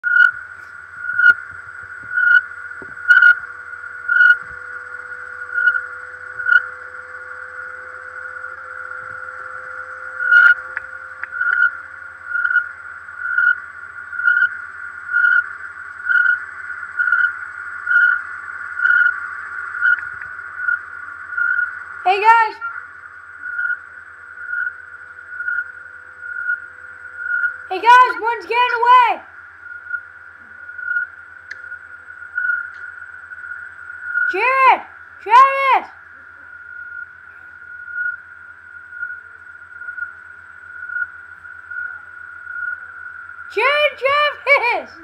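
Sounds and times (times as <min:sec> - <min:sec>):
faint electrical hum: 0:00.0 - 0:45.0
steady high electronic tone: 0:00.0 - 0:45.0
electronic beeps: 0:01.0 - 0:03.4, 0:09.0 - 0:13.6, 0:19.8 - 0:23.8, 0:26.3 - 0:29.0, 0:29.7 - 0:35.4.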